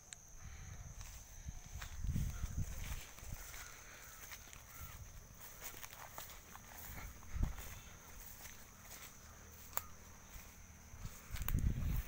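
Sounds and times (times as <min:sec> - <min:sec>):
footsteps through grass: 0:00.8 - 0:12.0
leaves crackling underfoot: 0:00.9 - 0:12.0.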